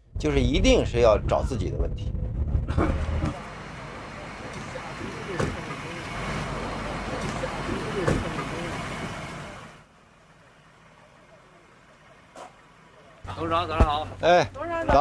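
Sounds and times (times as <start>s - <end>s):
vehicle engine and road noise: 0.0s - 15.0s.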